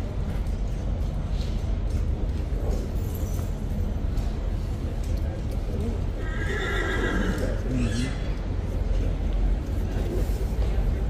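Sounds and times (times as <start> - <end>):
horse whinnying: 6.2 - 8.3.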